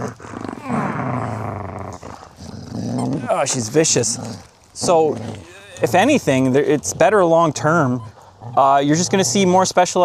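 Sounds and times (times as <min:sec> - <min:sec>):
dog growling in play: 0:00.0 - 0:09.7.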